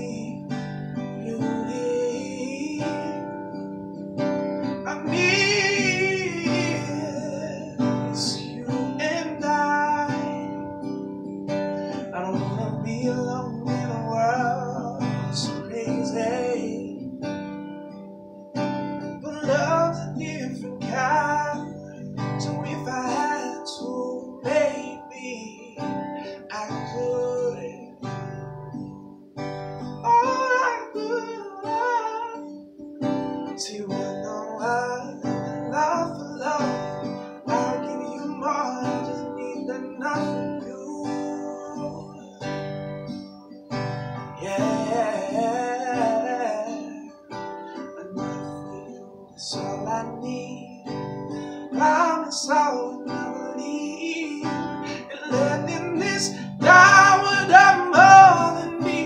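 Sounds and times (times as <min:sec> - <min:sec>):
man singing: 0:00.0 - 0:17.5, 0:19.0 - 0:28.4, 0:29.9 - 0:32.6, 0:33.3 - 0:42.8, 0:44.3 - 0:59.0
acoustic guitar chords: 0:00.0 - 0:59.0.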